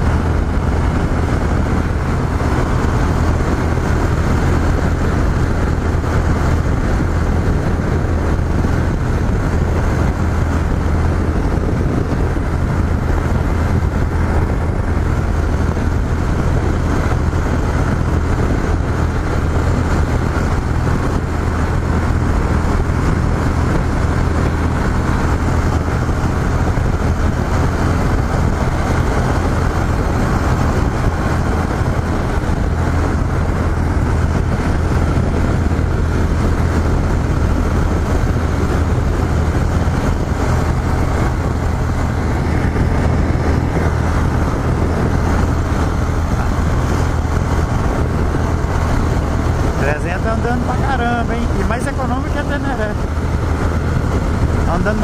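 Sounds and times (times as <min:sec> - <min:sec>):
motorcycle engine cruising: 0:00.0 - 0:55.0
road noise: 0:00.0 - 0:55.0
wind rush: 0:00.0 - 0:55.0.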